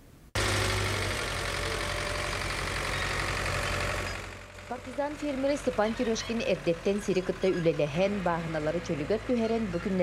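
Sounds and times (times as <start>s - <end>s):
tractor engine running: 0.4s - 10.0s.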